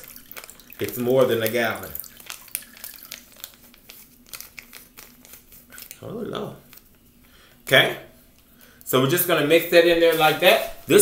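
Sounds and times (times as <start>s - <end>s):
powder packet crinkling: 0.0s - 7.0s.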